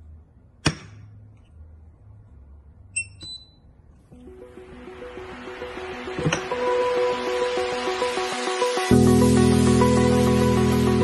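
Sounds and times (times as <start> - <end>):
short electronic beeps: 3.0 - 3.7.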